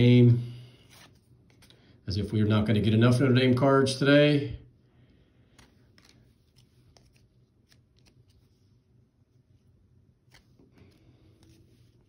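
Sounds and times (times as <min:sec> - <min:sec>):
cards being flipped through: 0:00.8 - 0:01.8, 0:05.5 - 0:08.8, 0:10.2 - 0:12.0.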